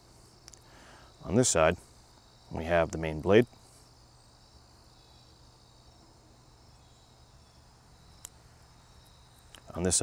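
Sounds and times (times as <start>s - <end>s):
cricket-like insect trill: 0.0s - 10.0s.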